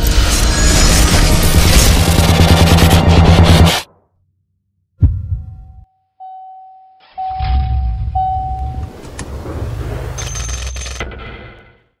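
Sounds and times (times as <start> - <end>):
seatbelt warning chime: 5.9 - 7.4, 8.2 - 8.9.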